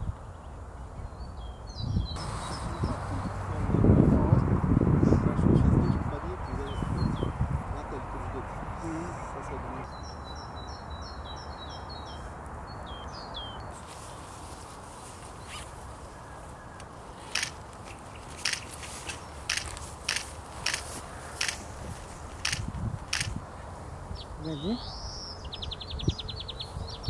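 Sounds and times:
background hiss: 0.0 - 4.4, 7.8 - 26.9
small bird chirping: 15.4 - 21.6
camera shutter clicks: 17.3 - 17.6, 18.4 - 18.7, 19.4 - 21.6, 22.4 - 23.4.

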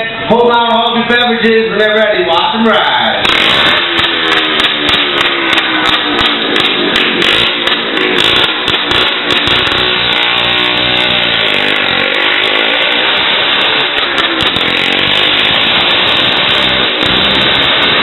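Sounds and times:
motorcycle engines revving: 2.8 - 18.0.

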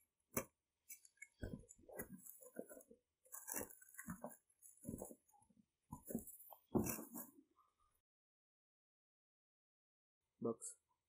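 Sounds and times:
tissue paper rustling: 2.0 - 5.3
cardboard box scrapes and knocks: 6.0 - 7.4.

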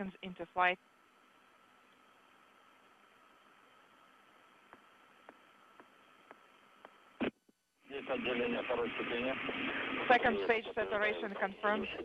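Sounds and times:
communications feed hiss: 0.0 - 12.0
person talking over radio: 8.0 - 12.0.

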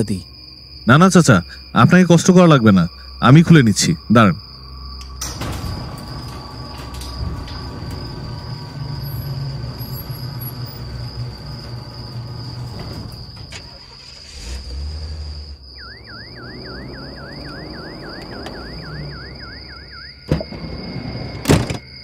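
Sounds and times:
vehicle engine rumbling: 2.9 - 21.8
rapid rising chirps: 2.9 - 22.0
steady high thin tone: 15.7 - 21.4.

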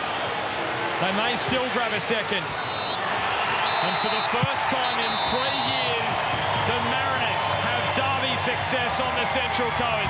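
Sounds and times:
crowd cheering and clapping: 0.0 - 10.0
referee's whistle trilling blast: 2.5 - 5.9.

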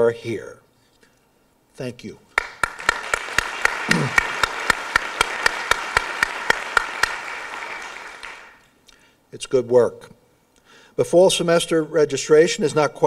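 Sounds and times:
loud sharp claps near microphone: 2.3 - 8.7
audience applauding: 2.4 - 8.6.

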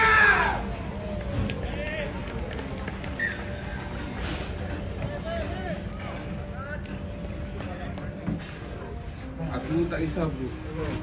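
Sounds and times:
outdoor background noise: 0.0 - 11.0.

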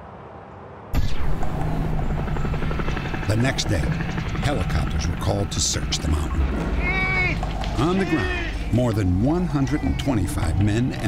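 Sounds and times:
helicopter flying overhead: 0.8 - 11.0.

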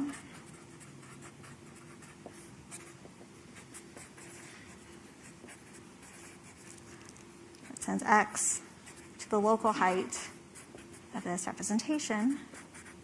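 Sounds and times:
marker writing on paper: 0.0 - 3.0, 3.6 - 6.8, 10.6 - 11.1, 12.3 - 13.0.

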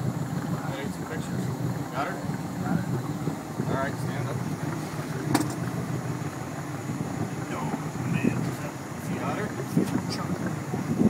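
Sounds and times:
boat motor running: 0.0 - 11.0
sharp knock: 5.3 - 5.6.

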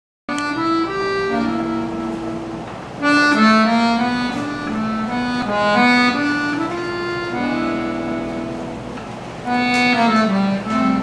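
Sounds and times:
piano accordion chords: 0.3 - 11.0.

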